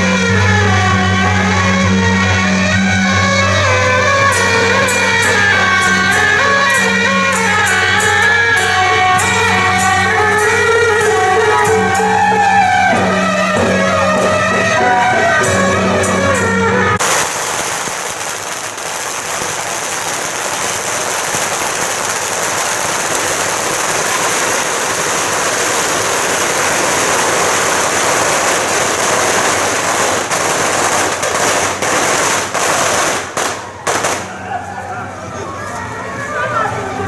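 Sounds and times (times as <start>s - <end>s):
firecrackers crackling: 0.0s - 35.2s.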